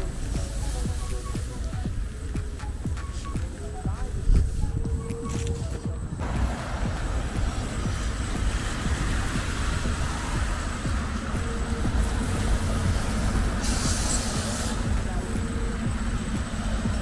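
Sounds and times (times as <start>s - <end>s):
road traffic noise: 0.0s - 17.0s
wind rumble on microphone: 0.0s - 17.0s.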